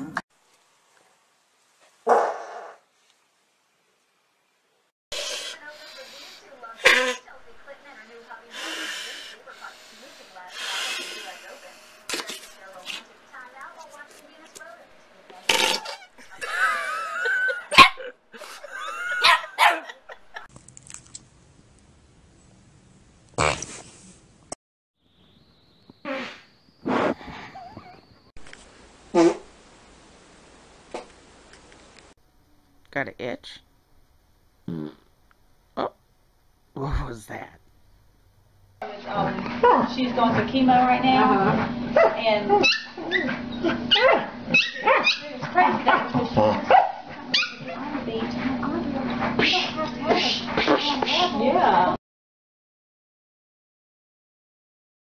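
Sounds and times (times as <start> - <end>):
puppy barking: 2.1 - 2.8, 17.7 - 18.1, 19.1 - 20.0, 41.2 - 47.7.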